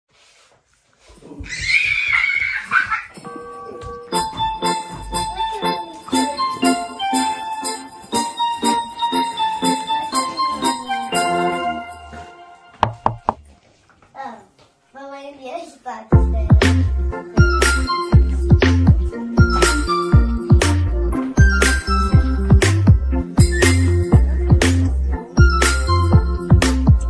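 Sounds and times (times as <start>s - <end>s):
jingle-bell music: 3.2s - 12.8s, 16.2s - 27.0s
sharp knocks: 12.8s - 13.5s.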